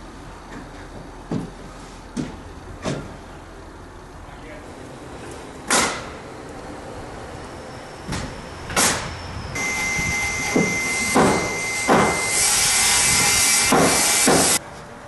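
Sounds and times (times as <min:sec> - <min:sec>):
high whine: 0:04.6 - 0:14.7
hissing machine: 0:07.4 - 0:14.6
sharp knocks: 0:10.5 - 0:12.2, 0:13.7 - 0:14.6.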